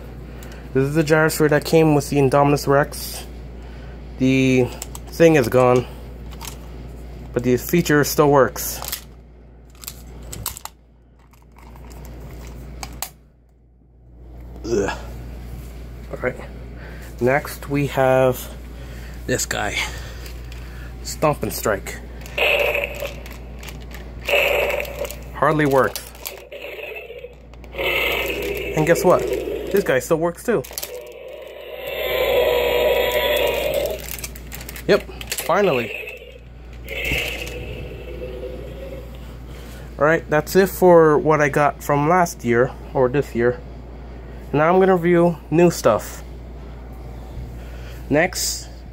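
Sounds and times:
toy dinosaur electronic roar: 0:22.3 - 0:23.4, 0:24.2 - 0:34.2, 0:35.3 - 0:39.2
plastic toy clicking and rattling: 0:22.6 - 0:26.5, 0:30.6 - 0:31.2, 0:33.2 - 0:37.6.

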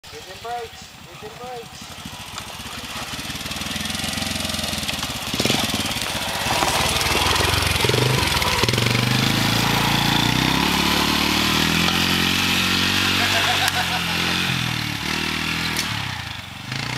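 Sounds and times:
atv engine running: 0:00.1 - 0:16.9.

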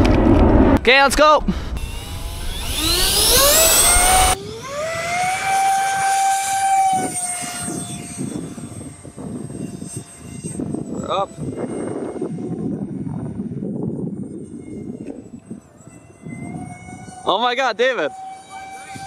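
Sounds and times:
electric ducted fan whine: 0:00.0 - 0:19.0.

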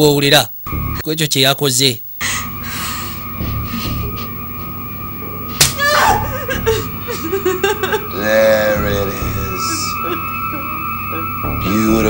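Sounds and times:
high wavering cry: 0:02.2 - 0:12.0
sharp slap: 0:05.6 - 0:05.8.

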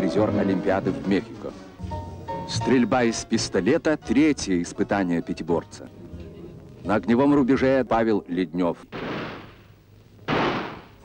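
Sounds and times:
pistol shots: 0:08.9 - 0:09.7, 0:10.3 - 0:11.0.

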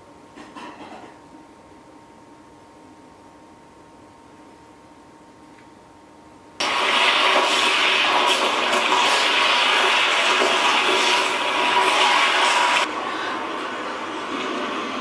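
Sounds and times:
film soundtrack rushing noise: 0:06.6 - 0:15.0.

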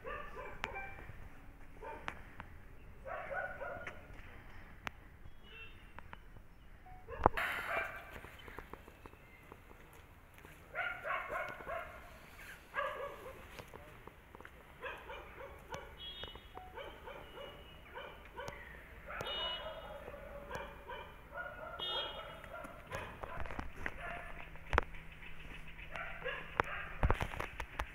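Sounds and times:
dog barking: 0:00.0 - 0:00.9, 0:01.8 - 0:02.1, 0:03.0 - 0:04.0, 0:07.1 - 0:08.1, 0:10.7 - 0:12.1, 0:12.7 - 0:13.5, 0:14.8 - 0:16.1, 0:16.7 - 0:24.4, 0:25.9 - 0:27.0.

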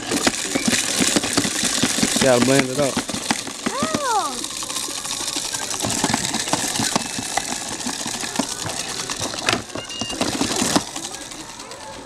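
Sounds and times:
toy blender rattly whir: 0:00.0 - 0:12.0.

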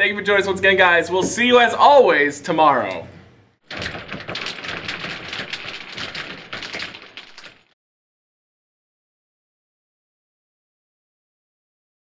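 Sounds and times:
dense rapid crackling: 0:03.6 - 0:07.8.

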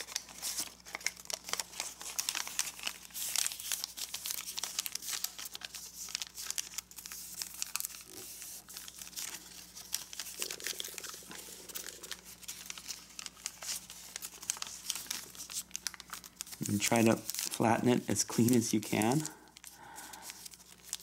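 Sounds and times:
paper crinkling and crackling: 0:00.0 - 0:21.0.

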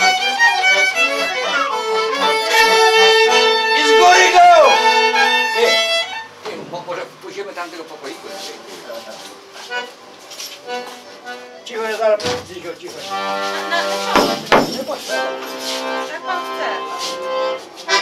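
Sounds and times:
accordion holding long notes: 0:00.0 - 0:06.4, 0:08.4 - 0:18.0
fiddle melody: 0:00.0 - 0:06.4, 0:09.4 - 0:18.0
people talking: 0:01.0 - 0:05.8, 0:06.4 - 0:09.4, 0:11.7 - 0:17.2.

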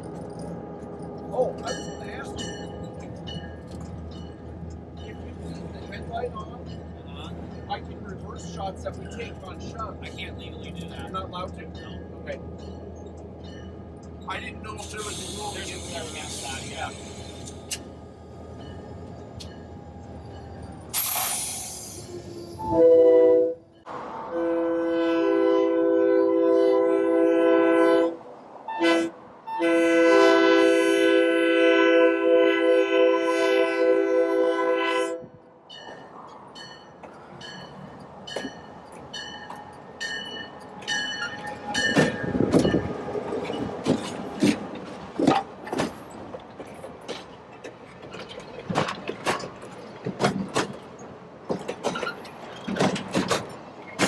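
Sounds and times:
train wheels clicking on rails: 0:00.0 - 0:22.3, 0:35.8 - 0:54.0
locomotive air horn: 0:22.6 - 0:23.7, 0:24.3 - 0:35.4.

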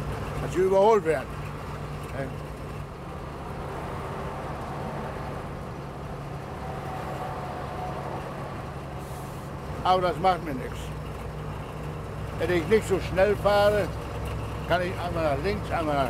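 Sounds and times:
road noise: 0:00.0 - 0:16.0
truck diesel engine humming: 0:00.0 - 0:16.0.

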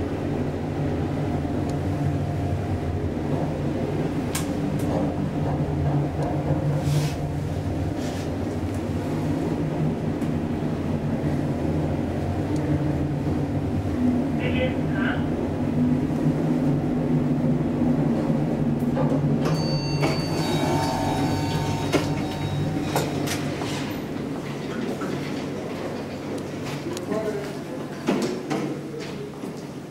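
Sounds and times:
elevator pump humming: 0:00.0 - 0:28.0
higher ringing tones: 0:19.4 - 0:24.1.

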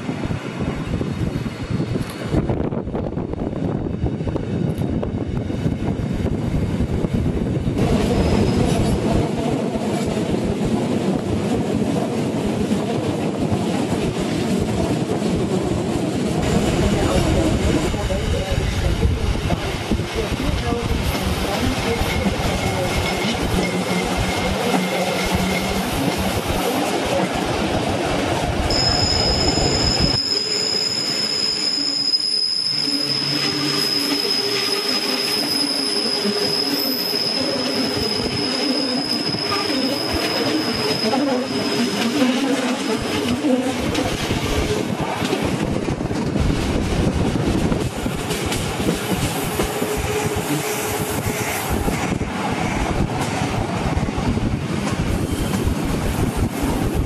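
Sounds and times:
train wheels rumbling on rail: 0:00.0 - 0:57.0
high-pitched wheel flange squeal: 0:08.0 - 0:09.0, 0:28.7 - 0:43.1.

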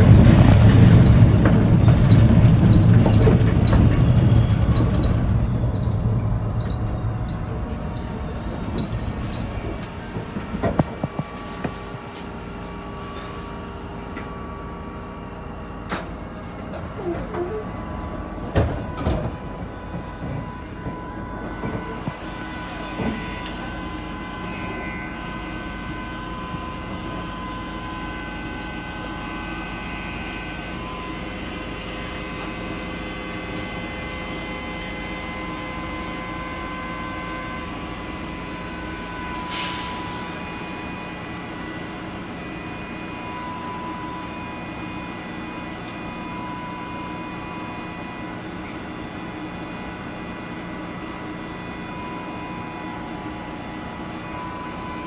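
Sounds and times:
subway car rumbling in tunnel: 0:00.0 - 0:55.0.

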